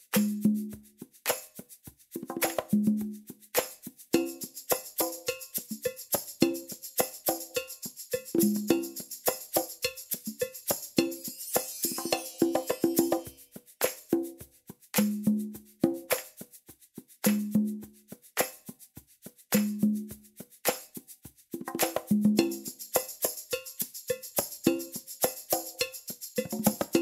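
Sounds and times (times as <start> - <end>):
fast hand percussion loop: 0.0 - 27.0
shaker-like ticks: 0.0 - 27.0.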